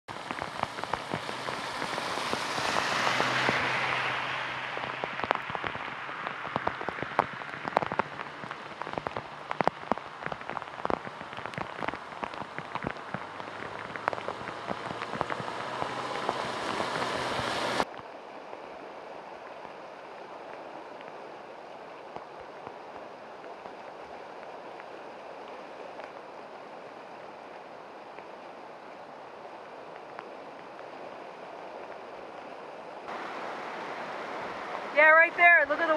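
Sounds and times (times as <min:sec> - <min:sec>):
heavy rain pouring: 0:00.1 - 0:35.9.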